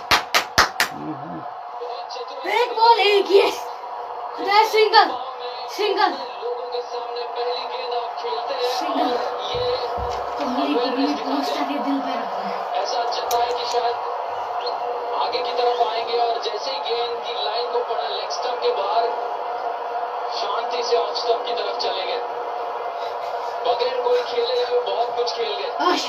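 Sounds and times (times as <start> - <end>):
television broadcast din: 0.0 - 26.0
muffled voices: 0.8 - 26.0.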